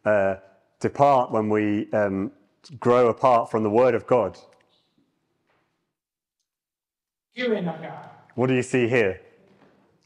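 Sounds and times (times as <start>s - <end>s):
man speaking into a microphone: 0.0s - 4.4s, 8.3s - 9.3s.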